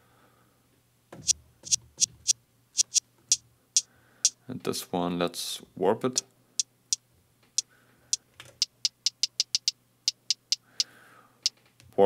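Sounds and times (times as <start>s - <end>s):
hi-hat hits: 2.8s - 4.4s, 8.6s - 10.7s.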